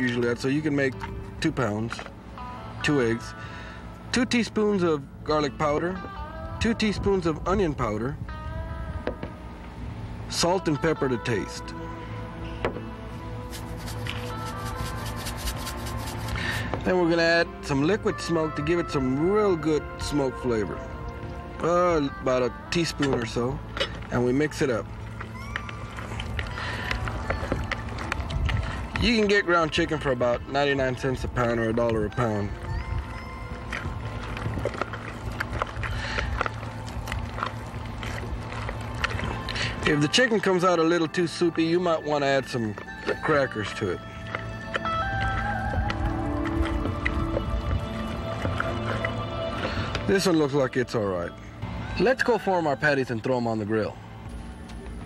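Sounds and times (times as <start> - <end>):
background music: 0.0 - 55.0
spice shaker ticking: 13.5 - 16.6.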